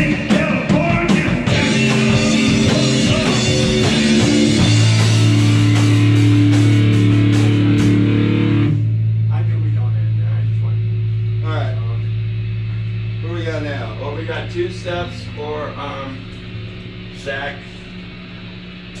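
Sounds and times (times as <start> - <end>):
punk rock band playing: 0.0 - 15.4
amplifier drone: 0.0 - 19.0
people talking: 9.3 - 12.1, 13.2 - 16.3, 17.2 - 17.9.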